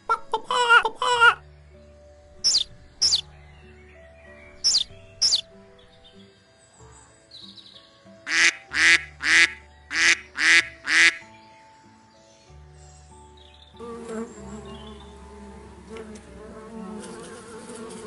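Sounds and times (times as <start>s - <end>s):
soft background music: 0.0s - 18.0s
duck quacking: 2.5s - 3.2s, 4.7s - 5.4s, 8.3s - 11.2s.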